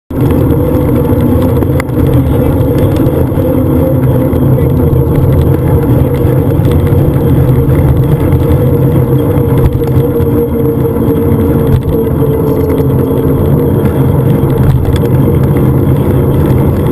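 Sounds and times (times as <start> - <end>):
bicycle tyre noise on asphalt: 0.1 - 16.9
wind rumble on microphone: 0.1 - 16.9.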